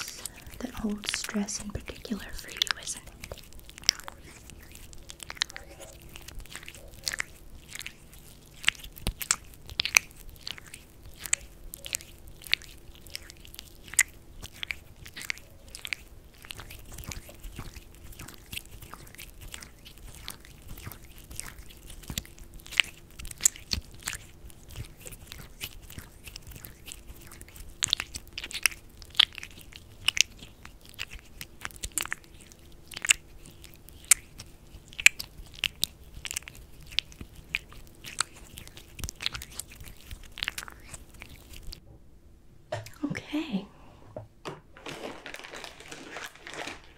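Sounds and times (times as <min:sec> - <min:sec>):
wet sticky clicks of lotion massage: 0:00.0 - 0:41.8.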